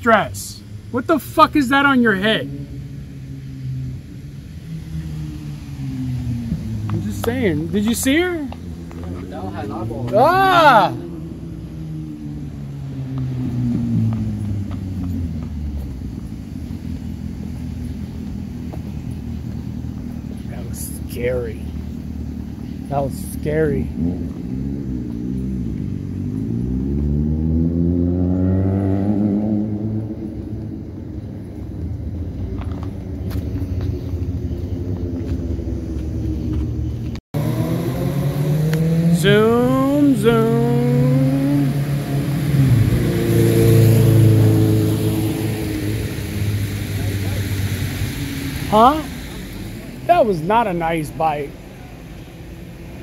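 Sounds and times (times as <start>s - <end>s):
vehicle accelerating hard: 0.0s - 53.0s
vehicles driving past: 0.0s - 53.0s.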